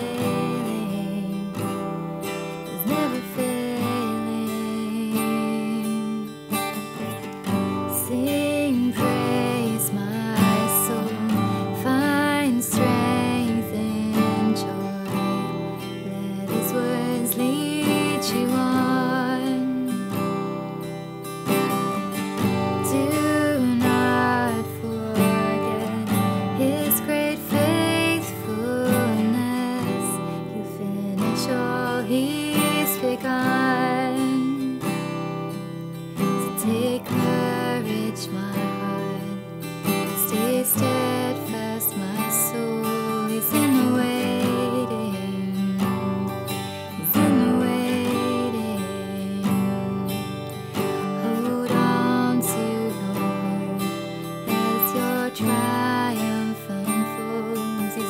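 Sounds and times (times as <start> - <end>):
strummed acoustic guitar: 0.0 - 58.0
woman singing: 0.0 - 58.0.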